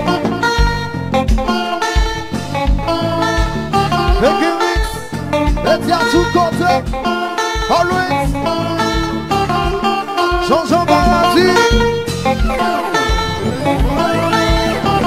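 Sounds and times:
kick drum: 0.0 - 5.7
bass: 0.0 - 15.0
electric guitar lead lines: 0.0 - 15.0
keyboard: 0.0 - 15.0.

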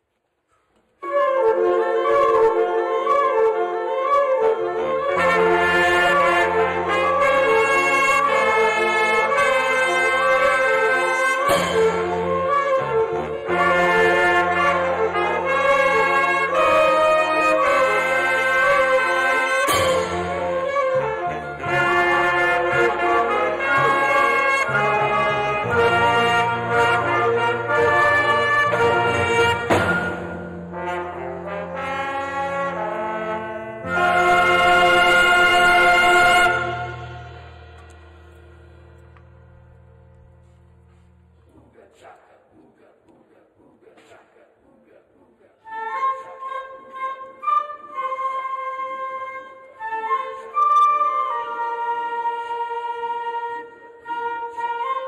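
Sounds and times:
concert band playing: 4.7 - 41.5.

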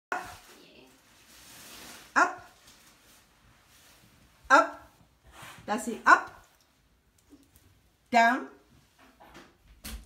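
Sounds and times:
dog barking: 2.2 - 2.6.

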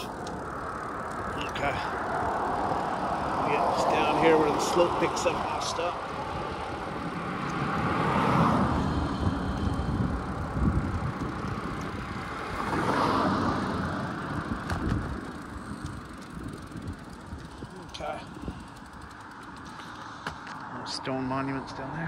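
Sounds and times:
bicycle road rumble: 0.0 - 22.0
car passing: 0.0 - 22.0
traffic noise: 0.0 - 22.0
wind noise: 2.6 - 19.0.

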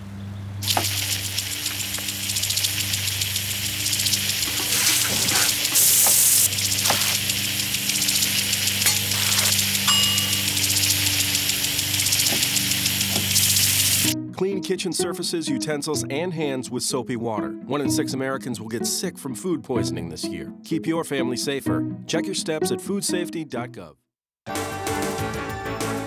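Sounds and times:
sprinkler spraying water: 0.6 - 14.2.

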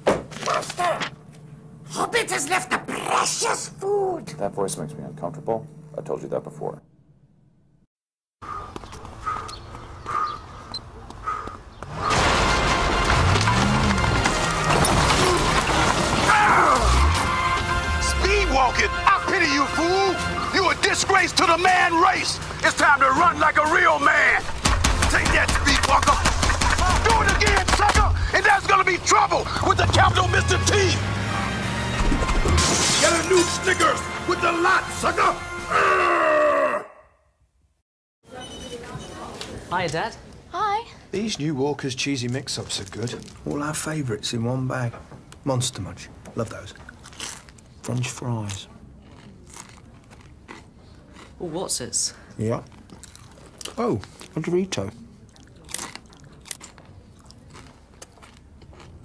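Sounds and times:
crash of splintering wood: 11.9 - 17.5, 32.0 - 33.3
music: 16.5 - 25.4, 29.9 - 35.8
man shouting: 25.1 - 31.0.

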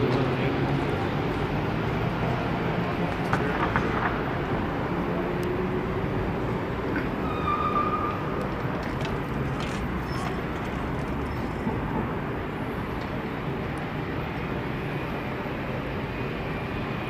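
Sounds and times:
traffic noise: 0.0 - 17.0.

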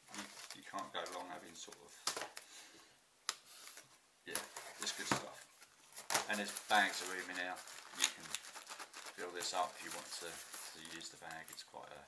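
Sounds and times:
plastic packet crinkling: 0.1 - 2.4, 5.9 - 11.8.

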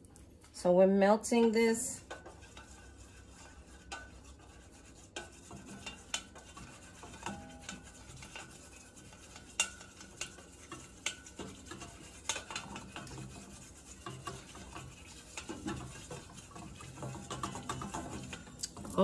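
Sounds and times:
wooden stirrer scraping steel bowl: 1.4 - 19.0.

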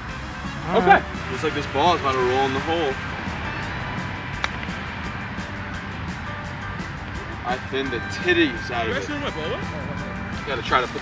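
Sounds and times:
background music: 0.0 - 11.0
golf club striking ball: 2.0 - 7.4.

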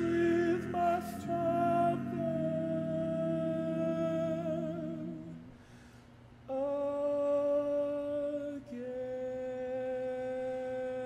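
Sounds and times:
quartet singing a cappella: 0.0 - 5.5.

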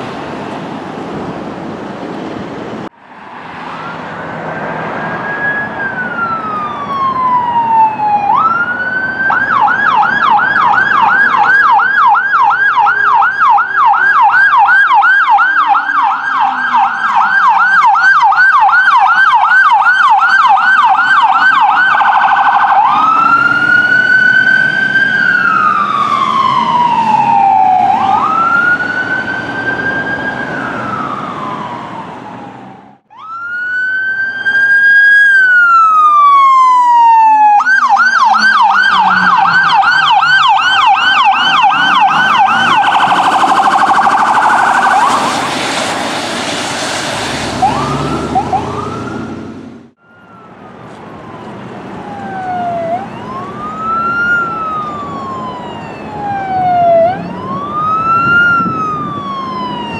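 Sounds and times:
ambulance siren yelp and wail: 3.4 - 59.9.

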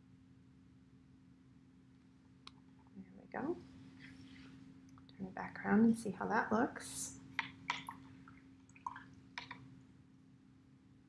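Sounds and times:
water drips: 7.1 - 9.8
brush tapping plastic cup: 7.4 - 8.1, 8.9 - 9.7.

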